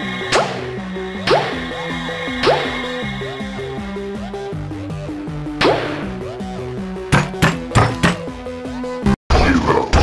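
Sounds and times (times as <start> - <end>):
background music: 0.0 - 10.0
cartoon thunk sound effects: 5.6 - 6.1, 7.1 - 8.3.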